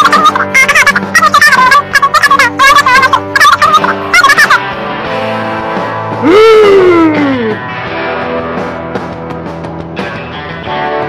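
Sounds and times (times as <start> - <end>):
high-pitched cartoon voice squealing: 0.0 - 4.6
background music: 0.0 - 11.0.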